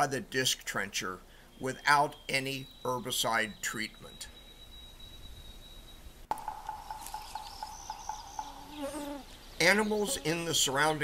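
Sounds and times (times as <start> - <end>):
woodpecker knocking on wood: 6.3 - 8.8.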